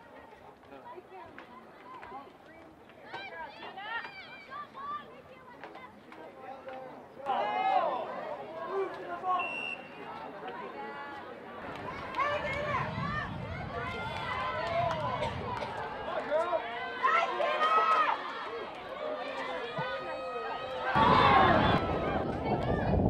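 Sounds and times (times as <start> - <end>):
people shouting and calling: 11.6 - 23.0.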